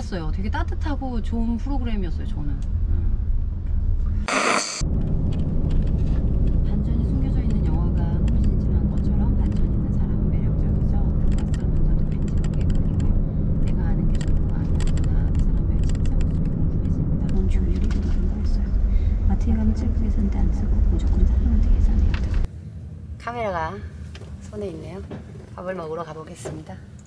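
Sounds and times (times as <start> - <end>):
short bright burst: 4.3 - 4.8
low rumble of van cabin: 4.9 - 22.5.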